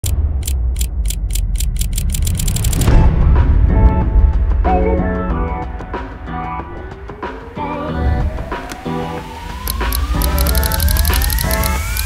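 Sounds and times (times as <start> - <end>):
sharp high ratchet ticks: 0.0 - 2.9, 9.6 - 12.0.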